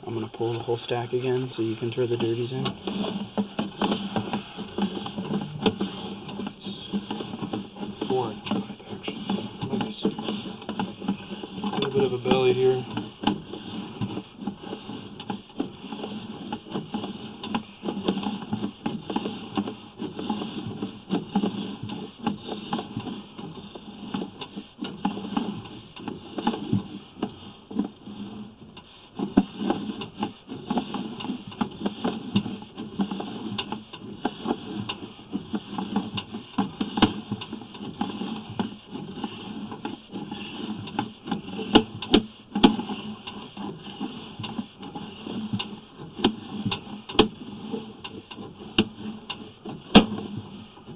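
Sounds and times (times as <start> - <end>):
cable rattling and scraping in pipe: 0.0 - 50.9.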